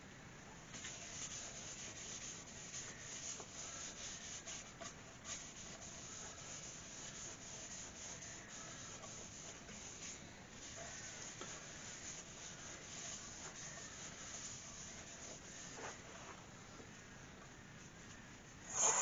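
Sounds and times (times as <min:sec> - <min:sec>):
cloth rubbing on wooden bowl: 0:00.8 - 0:16.4.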